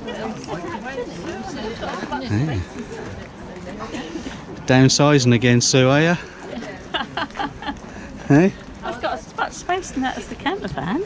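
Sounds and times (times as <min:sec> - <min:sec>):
overlapping voices chattering: 0:00.0 - 0:11.0.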